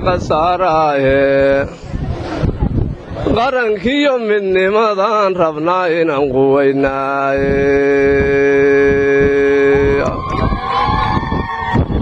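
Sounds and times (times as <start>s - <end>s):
man chanting through a microphone: 0.0s - 1.8s, 3.2s - 10.2s.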